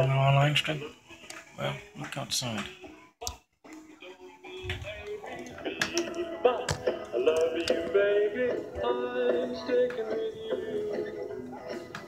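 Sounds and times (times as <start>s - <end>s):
oldies song on am radio: 0.0s - 12.0s.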